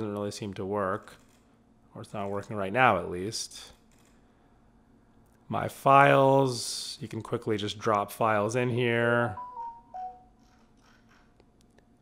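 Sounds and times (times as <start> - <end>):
brief tone: 9.4 - 10.4.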